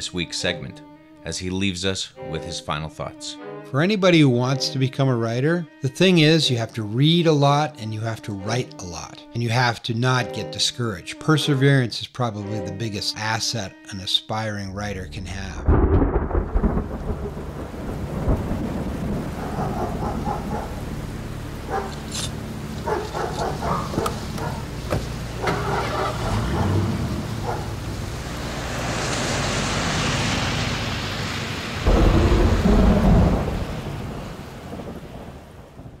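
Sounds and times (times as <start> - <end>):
rolling thunder: 15.6 - 20.9, 26.0 - 30.7, 31.8 - 36.0
rain: 15.7 - 36.0.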